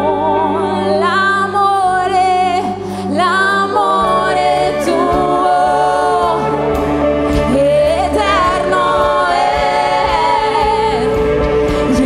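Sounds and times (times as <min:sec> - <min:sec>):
group singing gospel: 0:00.0 - 0:12.0
keyboard accompaniment: 0:00.0 - 0:12.0.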